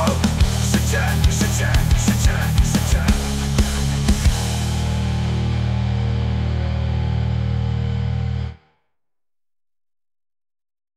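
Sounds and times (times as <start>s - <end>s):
electric guitars and bass chord: 0.0s - 8.7s.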